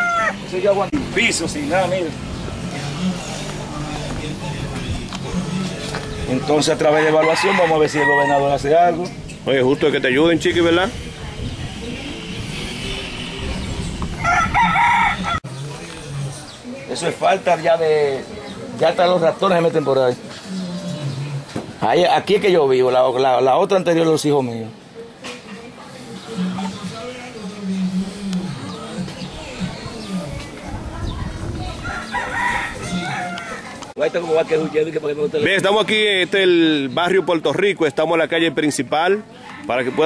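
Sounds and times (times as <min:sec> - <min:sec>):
rooster crowing: 0:00.0 - 0:00.4, 0:06.8 - 0:08.7, 0:14.2 - 0:15.4, 0:31.8 - 0:33.8.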